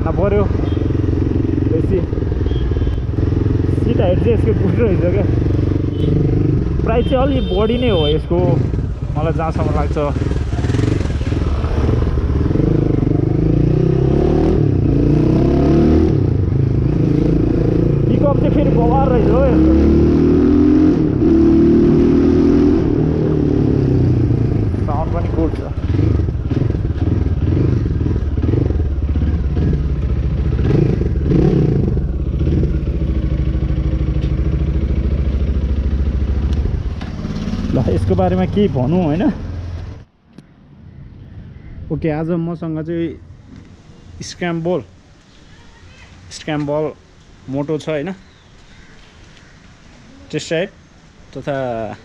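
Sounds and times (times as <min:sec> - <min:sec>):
motorcycle engine running: 0:00.0 - 0:13.8, 0:23.5 - 0:39.8.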